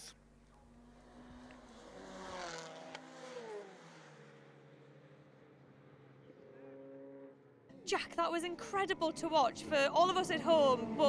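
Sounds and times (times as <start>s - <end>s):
faint steady engine note: 0.0s - 1.9s
race car driving past: 0.6s - 7.8s.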